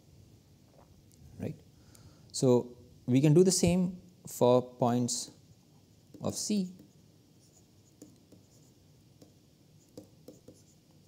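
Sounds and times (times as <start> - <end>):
stylus scratching on tablet: 6.1 - 11.0.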